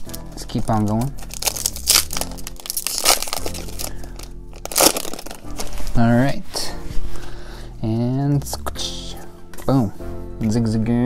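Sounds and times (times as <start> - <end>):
foil wrapper crinkling and tearing: 0.0 - 6.1
faint background music: 0.0 - 11.0.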